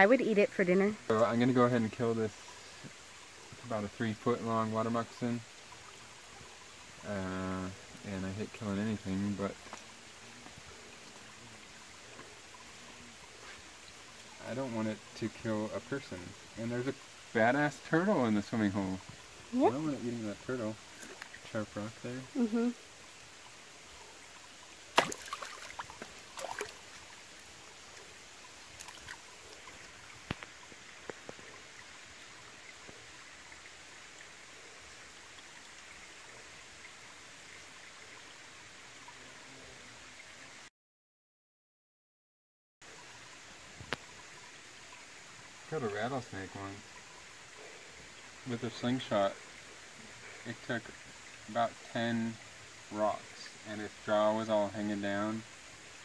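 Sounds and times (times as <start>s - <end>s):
creek water trickling over rocks: 0.0s - 40.7s, 42.8s - 56.0s.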